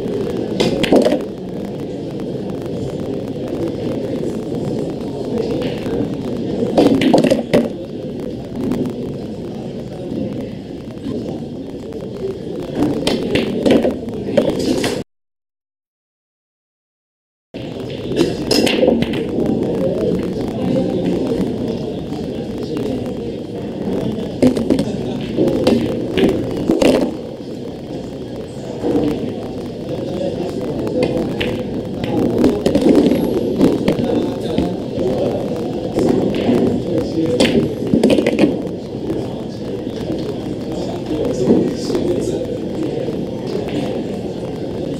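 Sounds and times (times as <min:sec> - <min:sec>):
pool balls clacking: 0:00.4 - 0:01.4, 0:06.6 - 0:07.8, 0:17.8 - 0:21.8, 0:23.9 - 0:27.3, 0:30.0 - 0:39.3
cue striking balls: 0:00.5 - 0:01.2, 0:06.7 - 0:07.8, 0:18.1 - 0:19.6, 0:24.4 - 0:27.2
background voices: 0:17.6 - 0:44.9.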